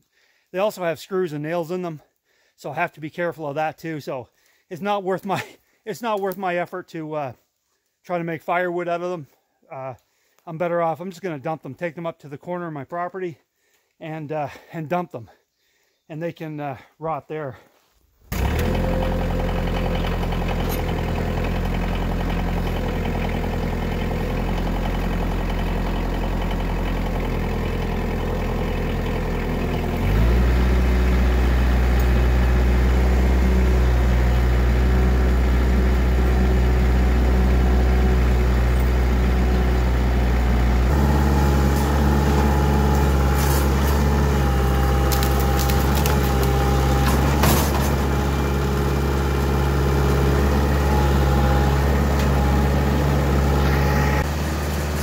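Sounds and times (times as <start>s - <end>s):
tractor diesel engine: 18.3s - 55.0s.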